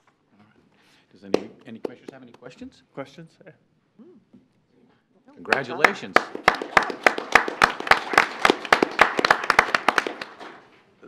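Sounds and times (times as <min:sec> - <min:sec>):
people applauding: 0:05.5 - 0:10.7.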